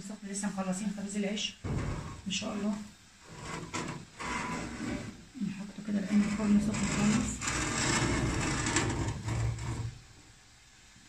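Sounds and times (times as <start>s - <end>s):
earthenware pot scraping in oven: 1.6s - 10.1s.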